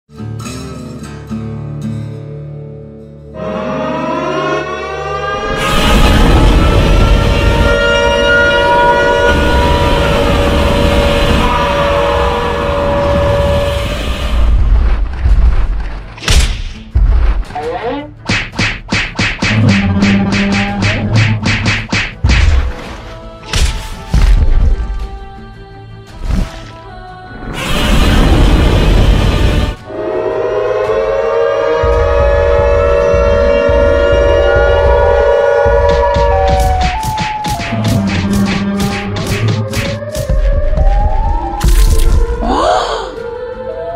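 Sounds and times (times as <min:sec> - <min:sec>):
siren-like monster blare: 0:03.4 - 0:14.6, 0:27.7 - 0:43.9
low rumble: 0:05.4 - 0:16.2, 0:31.8 - 0:37.0
heavy booming thumps: 0:31.8 - 0:42.4.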